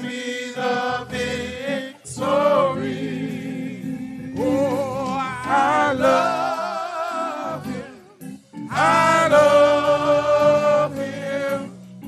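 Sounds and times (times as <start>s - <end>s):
gospel singing with vibrato: 0.0s - 12.0s.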